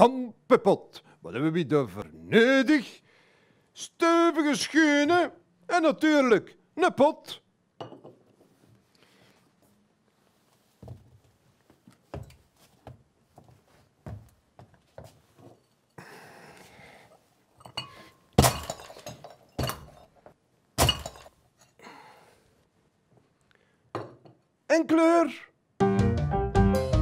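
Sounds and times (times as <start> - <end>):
pot breaking impacts: 17.7 - 20.1, 20.8 - 21.4.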